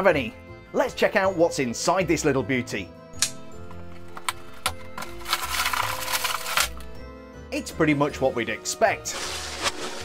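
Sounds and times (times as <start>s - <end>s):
soft background music: 0.0s - 10.0s
packaging rustling: 3.8s - 6.9s, 9.1s - 10.0s.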